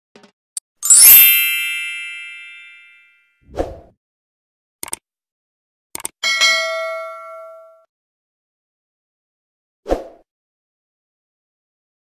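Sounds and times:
bright bell-like chime: 0.8s - 3.4s.

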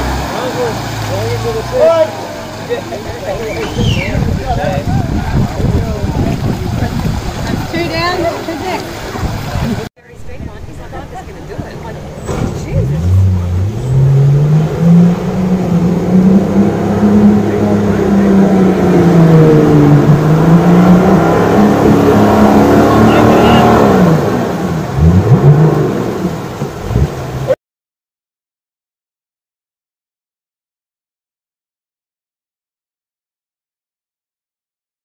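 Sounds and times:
water rushing: 0.0s - 27.6s
engine revving hard: 12.3s - 27.5s.

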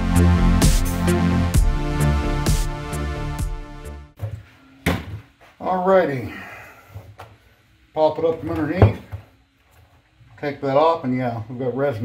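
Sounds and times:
background music: 0.0s - 4.2s.

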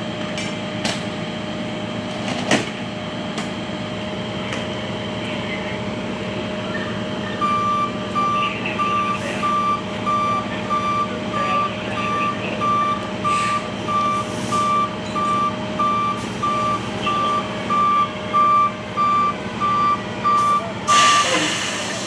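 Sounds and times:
truck engine running: 0.0s - 22.0s
back-up alarm beeping: 6.8s - 21.3s.

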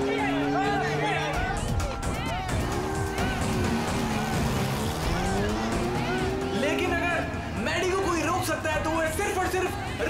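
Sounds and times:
motorcycle engine revving: 0.0s - 8.6s
background music: 0.0s - 10.0s
crowd voices: 0.0s - 10.0s.

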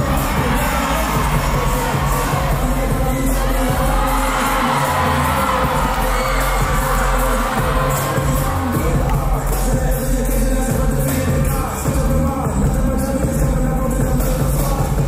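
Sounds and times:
audience cheering and screaming: 0.0s - 9.5s
loud dance music with low beat: 0.0s - 15.0s.

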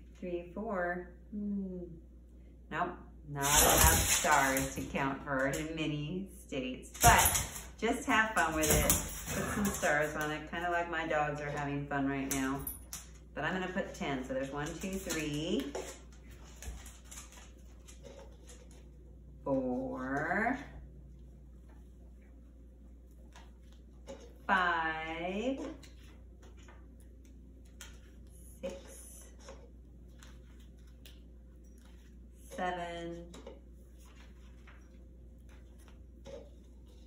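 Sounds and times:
low room hum: 0.0s - 37.0s.

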